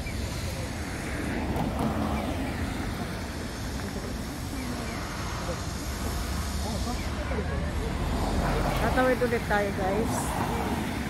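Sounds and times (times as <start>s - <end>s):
cars passing: 0.0s - 11.0s
faint voices: 0.0s - 11.0s.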